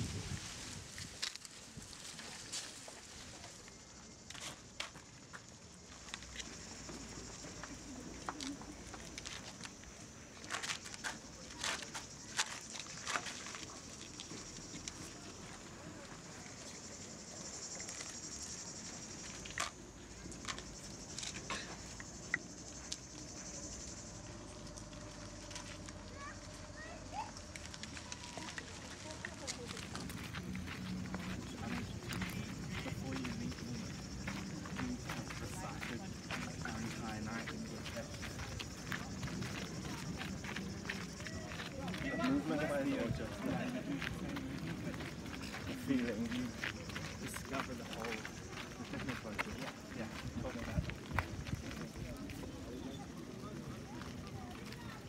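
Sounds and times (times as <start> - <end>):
footsteps crunching on gravel: 0.0 - 16.7, 22.5 - 55.0
cicadas buzzing: 0.0 - 55.0
people's voices: 0.0 - 55.0
man speaking: 31.3 - 38.3, 45.6 - 46.6.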